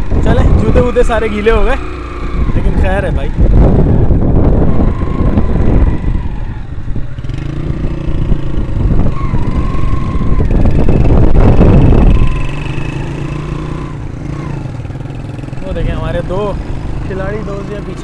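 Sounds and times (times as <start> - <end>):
motorcycle engine running: 0.0 - 18.0
wind buffeting microphone: 0.0 - 18.0.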